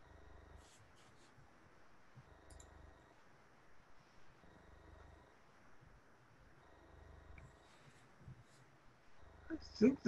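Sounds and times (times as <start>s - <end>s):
soft clicks: 2.4s - 2.8s.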